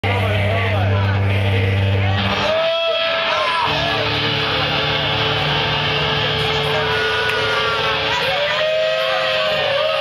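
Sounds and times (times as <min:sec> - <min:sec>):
loud low amplifier drone: 0:00.0 - 0:10.0
people's voices: 0:00.0 - 0:10.0.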